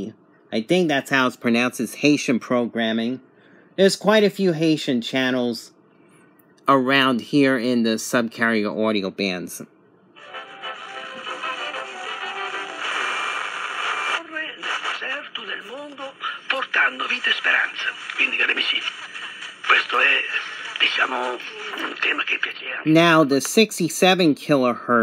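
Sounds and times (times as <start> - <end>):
music from small speaker: 10.2 - 13.3
broadcast voice speaking: 14.3 - 25.0.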